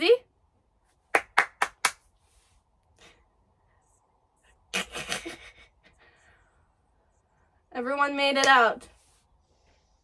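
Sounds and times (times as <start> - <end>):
person clapping hands: 1.1 - 2.0.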